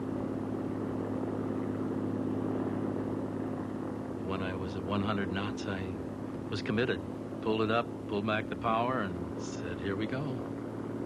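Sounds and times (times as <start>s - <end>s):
turboprop engine drone: 0.0s - 11.0s.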